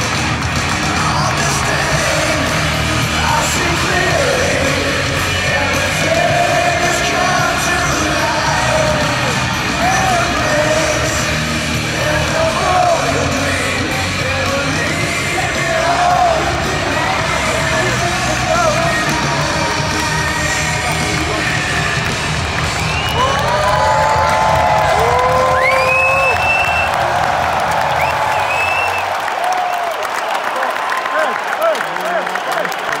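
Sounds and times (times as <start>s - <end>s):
rock music over pa: 0.0s - 28.6s
crowd cheering and yelling: 0.0s - 33.0s
close voices whooping: 22.9s - 32.4s.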